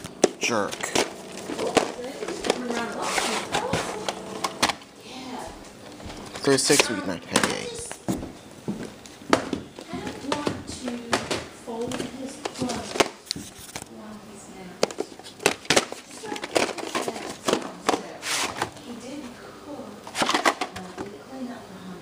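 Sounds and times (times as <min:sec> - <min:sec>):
tape cases clicking and knocking: 0:00.0 - 0:04.8, 0:05.8 - 0:08.0, 0:09.3 - 0:13.8, 0:14.8 - 0:18.8, 0:20.0 - 0:21.1.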